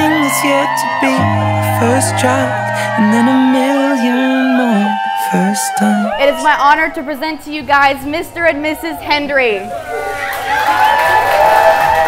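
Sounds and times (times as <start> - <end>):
background music: 0.0 - 8.8
crowd cheering: 0.0 - 12.0.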